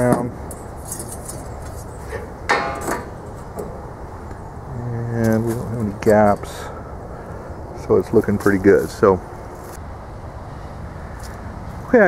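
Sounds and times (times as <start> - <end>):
metallic clank ringing: 2.1 - 3.8.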